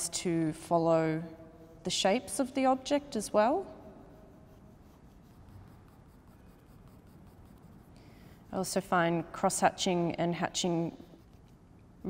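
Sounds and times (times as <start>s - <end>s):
pencil lead hatching on paper: 3.7s - 8.7s, 10.8s - 12.0s.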